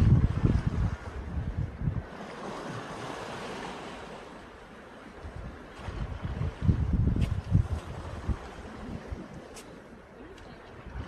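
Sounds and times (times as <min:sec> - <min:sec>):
small sea waves washing: 0:00.0 - 0:11.0
wind flutter on microphone: 0:00.0 - 0:11.0.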